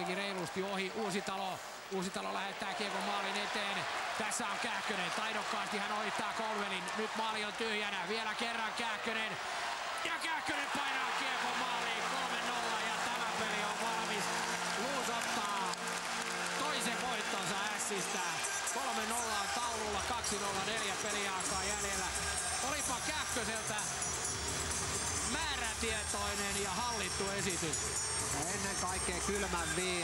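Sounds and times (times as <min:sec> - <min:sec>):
crowd cheering and chanting: 0:00.0 - 0:24.7.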